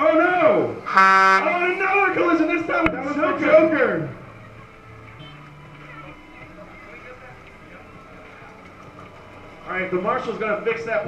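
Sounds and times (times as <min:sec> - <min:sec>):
low motor hum: 0:01.7 - 0:11.0.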